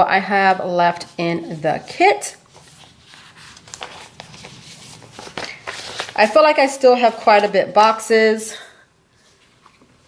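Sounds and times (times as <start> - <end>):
paper sticker sheets rustling: 0.9 - 7.9.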